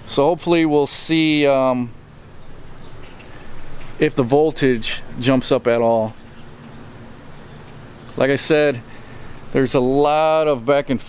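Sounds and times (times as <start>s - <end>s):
low background hiss: 0.0s - 11.0s
cricket chirping: 2.0s - 4.0s, 6.1s - 8.2s, 9.0s - 9.6s.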